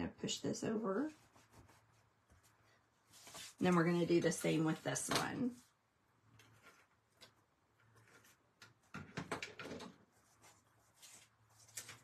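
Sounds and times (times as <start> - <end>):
paper handling: 10.2 - 12.0.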